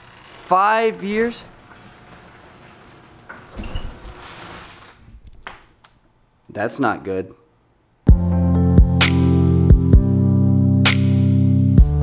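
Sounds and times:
garage door rumbling open: 0.0s - 5.8s.

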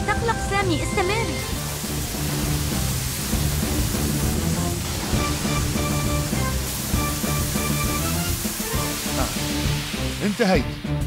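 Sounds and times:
background music with held notes: 0.0s - 11.0s
fire hose water spraying: 0.0s - 11.0s.

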